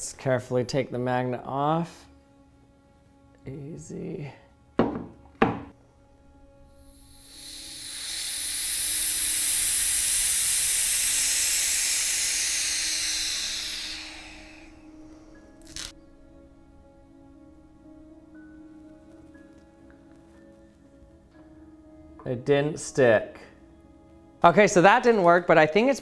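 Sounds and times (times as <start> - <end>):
air hissing through release valve: 6.8 - 15.9.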